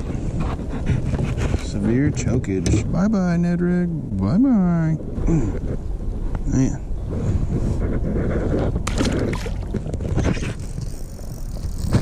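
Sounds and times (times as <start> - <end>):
low wind rumble on microphone: 0.0 - 12.0
water sloshing against kayak hull: 8.2 - 12.0
fish splashing into water: 8.8 - 10.0.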